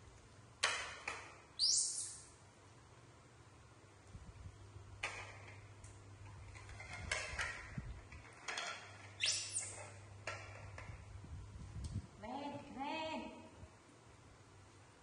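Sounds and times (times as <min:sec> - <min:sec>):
short rising squeak: 0:09.2 - 0:09.8.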